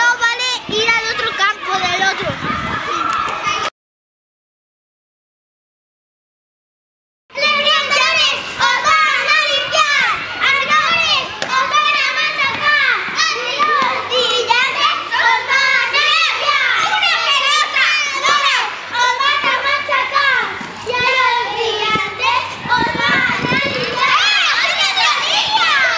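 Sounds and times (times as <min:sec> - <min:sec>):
children shouting and chattering: 0:00.0 - 0:03.7, 0:07.3 - 0:25.9.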